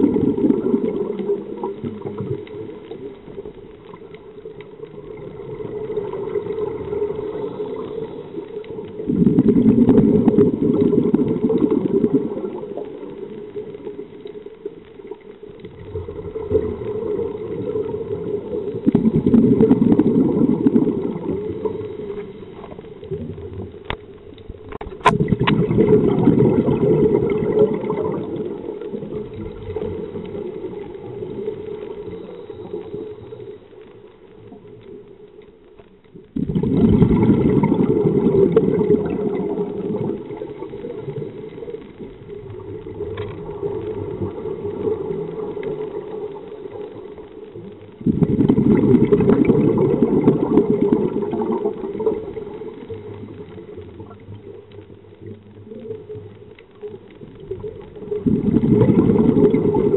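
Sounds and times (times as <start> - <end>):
underwater exhaled bubbles rushing: 0.0 - 35.4, 36.1 - 59.9.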